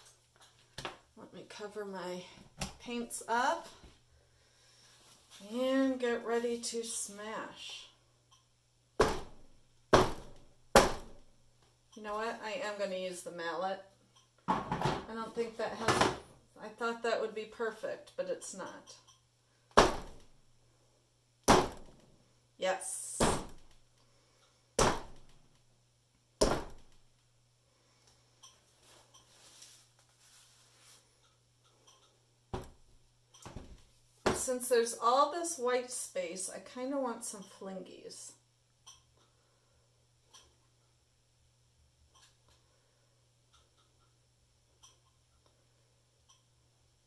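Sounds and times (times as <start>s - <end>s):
mallet smashing paint cup: 9.0s - 9.4s, 10.0s - 11.2s, 19.7s - 20.2s, 21.4s - 21.9s, 24.8s - 25.3s, 26.4s - 27.0s.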